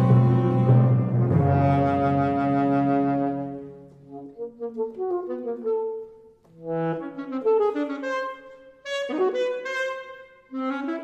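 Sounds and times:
alto saxophone: 0:00.0 - 0:11.0
orchestra playing: 0:00.0 - 0:11.0.

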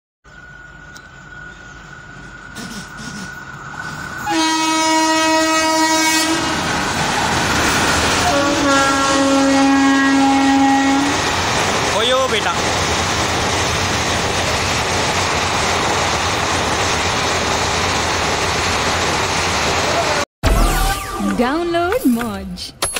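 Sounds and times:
passenger train rumbling past: 0:00.3 - 0:20.3
train horn blasts: 0:04.2 - 0:06.6, 0:08.2 - 0:11.2.

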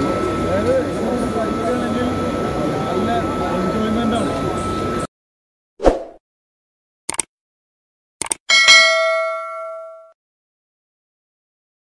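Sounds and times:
bright bell ding: 0:08.5 - 0:10.2.

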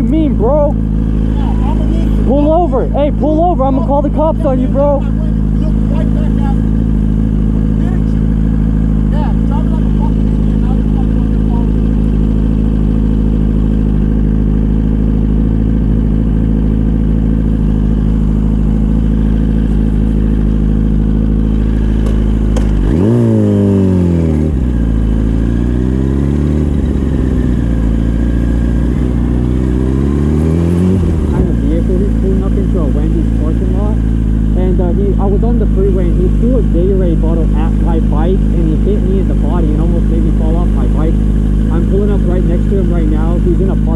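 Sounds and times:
motorcycle engine idling and revving: 0:00.0 - 0:43.9.

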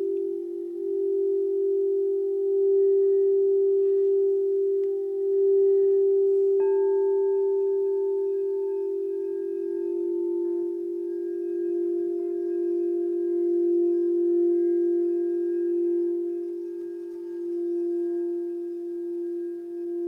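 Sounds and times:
higher singing bowl struck: 0:00.0 - 0:20.0
low singing bowl tone: 0:00.0 - 0:20.0.

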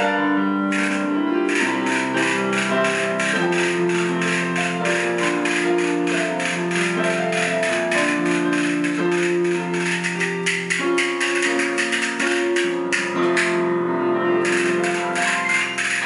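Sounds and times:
electric keyboard chords: 0:00.0 - 0:16.0
castanets clicking: 0:00.8 - 0:13.6, 0:14.5 - 0:16.0.

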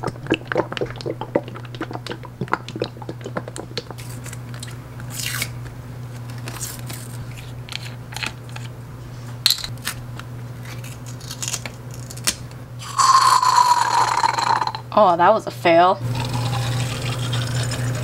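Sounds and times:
plastic and foil seal crinkling: 0:06.2 - 0:08.7, 0:09.7 - 0:12.5.

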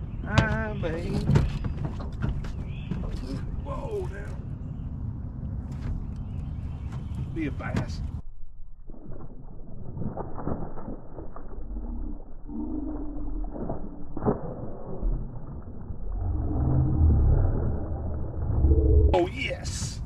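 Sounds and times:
low rumble: 0:00.0 - 0:20.0
fish splashing at surface: 0:08.9 - 0:12.2.

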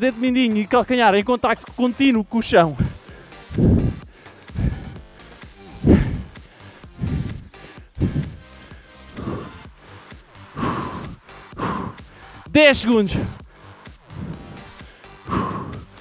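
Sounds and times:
workout music: 0:00.0 - 0:16.0
man breathing hard: 0:02.7 - 0:16.0.

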